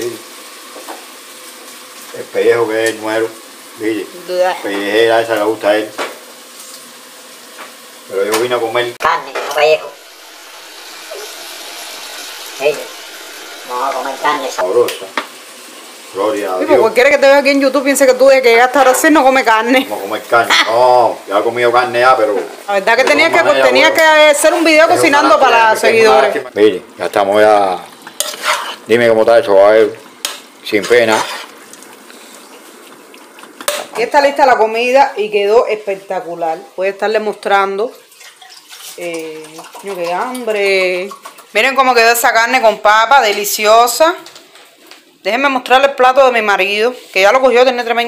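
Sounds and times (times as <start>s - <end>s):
meat sizzling in a pot: 0.0s - 48.0s
metal spoon scraping pot: 28.1s - 28.9s, 30.8s - 31.6s.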